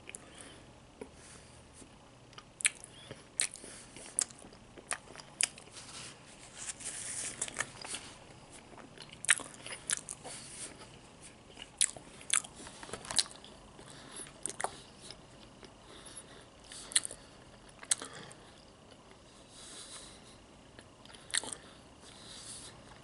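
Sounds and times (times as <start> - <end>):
person chewing crunchy food: 1.8 - 20.1, 20.7 - 23.0.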